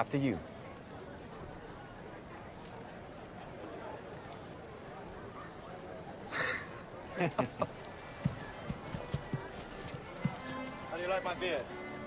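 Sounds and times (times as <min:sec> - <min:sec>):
horse hooves stepping slowly: 0:07.4 - 0:12.0
quiet background music: 0:07.8 - 0:12.0.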